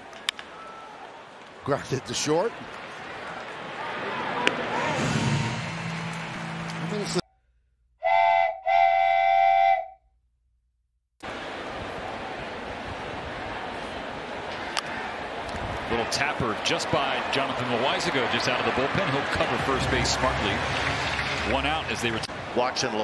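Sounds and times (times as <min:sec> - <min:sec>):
stadium crowd noise: 0:00.0 - 0:07.2, 0:11.2 - 0:23.0
loud whistle blasts: 0:08.0 - 0:10.0.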